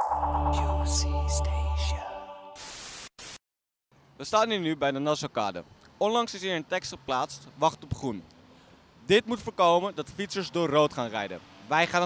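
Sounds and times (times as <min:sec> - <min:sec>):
electronic intro jingle: 0:00.0 - 0:02.6
static hiss bursts: 0:02.6 - 0:03.4.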